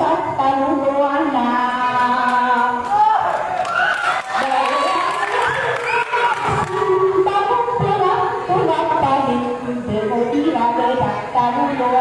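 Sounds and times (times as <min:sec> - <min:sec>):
crowd shouting and cheering: 0:02.8 - 0:07.1.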